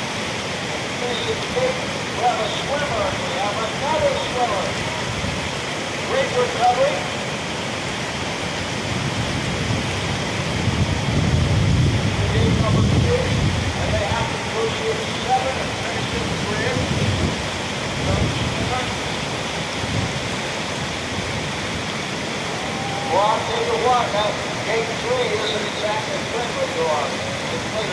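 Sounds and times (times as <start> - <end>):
river rapid roaring: 0.0 - 27.9.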